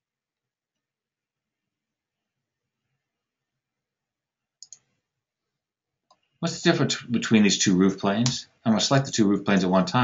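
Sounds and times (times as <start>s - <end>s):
computer mouse clicks: 4.6s - 5.0s.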